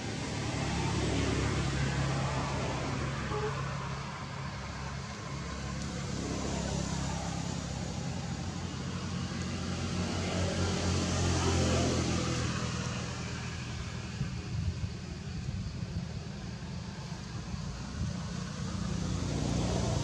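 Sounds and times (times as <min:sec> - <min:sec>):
engine humming: 0:00.0 - 0:20.0.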